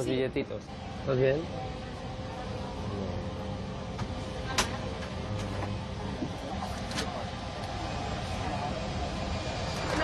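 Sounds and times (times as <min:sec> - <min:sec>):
airliner cabin noise: 0:01.6 - 0:10.0.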